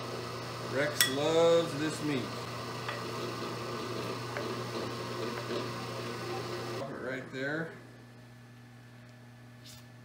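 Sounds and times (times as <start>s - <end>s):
meat grinder motor running: 0.0s - 6.8s.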